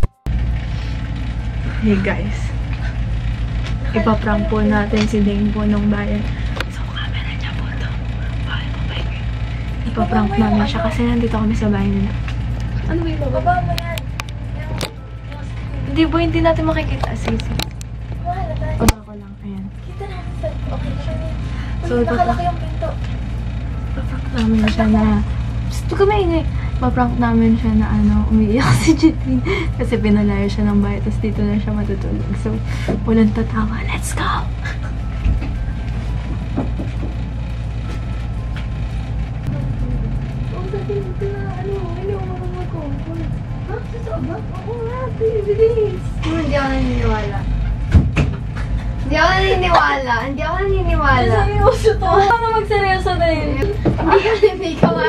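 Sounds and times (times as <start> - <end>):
low background hum: 0.0 - 55.0
steady low rumble: 0.0 - 55.0.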